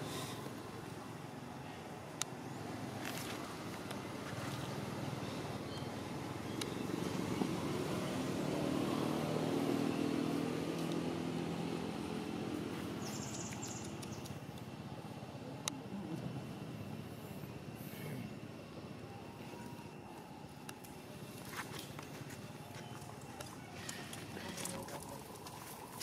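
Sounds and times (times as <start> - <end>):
vehicle engine hum: 0.0 - 26.0.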